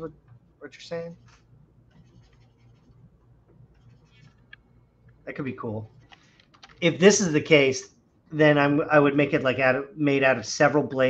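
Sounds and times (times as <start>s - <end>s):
stylus scratching on drawing tablet: 1.0s - 3.0s, 3.7s - 4.4s.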